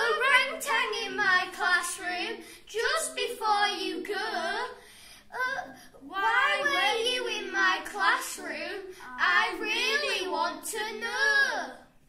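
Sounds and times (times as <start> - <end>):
boys singing together: 6.2 - 11.8.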